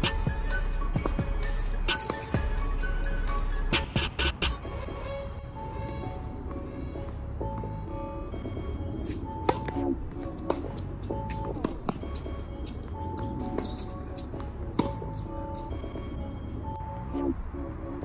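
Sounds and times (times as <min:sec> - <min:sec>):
background music with held notes: 0:00.0 - 0:18.0
tennis ball struck and bouncing: 0:09.4 - 0:10.7, 0:14.7 - 0:15.6.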